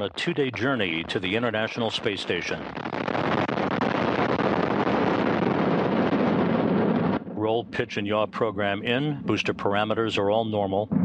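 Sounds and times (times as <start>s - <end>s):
rocket engines roaring: 0.0s - 11.0s.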